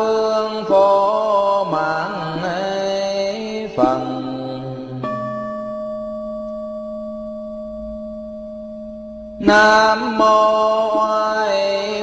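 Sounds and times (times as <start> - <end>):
bowl bell ringing: 3.9 - 10.3
low steady hum: 5.3 - 10.2.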